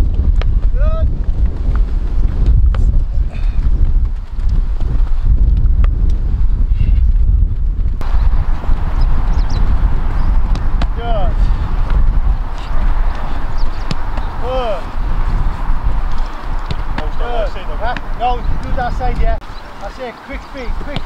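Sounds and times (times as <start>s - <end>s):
wind buffeting microphone: 0.0s - 21.0s
football being kicked: 10.3s - 11.0s, 13.8s - 14.5s, 16.0s - 17.2s, 20.8s - 21.0s.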